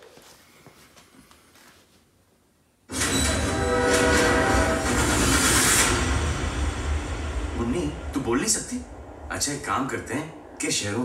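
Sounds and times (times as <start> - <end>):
train rushing past: 2.9 - 11.0
train horn: 3.0 - 6.8
deep rumble: 4.3 - 11.0.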